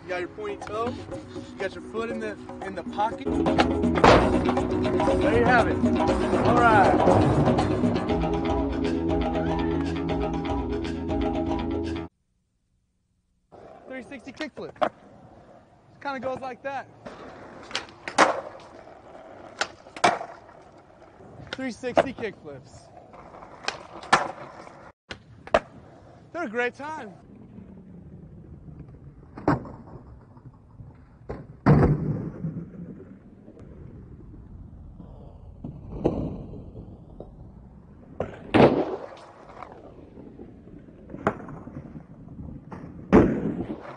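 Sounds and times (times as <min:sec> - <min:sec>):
skateboard wheels rolling: 0:00.1 - 0:08.6, 0:13.5 - 0:32.4, 0:33.1 - 0:43.9
skateboard landing clack: 0:03.5 - 0:04.6, 0:17.0 - 0:20.6, 0:23.2 - 0:25.8, 0:28.8 - 0:30.5, 0:31.2 - 0:32.5, 0:35.6 - 0:37.4, 0:38.1 - 0:39.9, 0:41.1 - 0:43.9
skateboard tail snap: 0:25.1 - 0:25.8.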